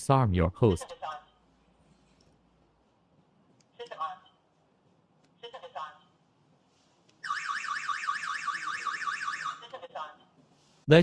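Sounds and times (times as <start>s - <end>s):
electronic alarm siren warbling: 7.2s - 9.7s.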